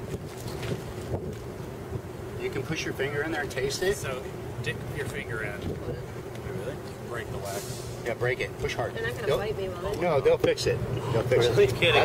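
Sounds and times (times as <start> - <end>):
wind buffeting microphone: 0.0 - 2.3, 5.3 - 6.2.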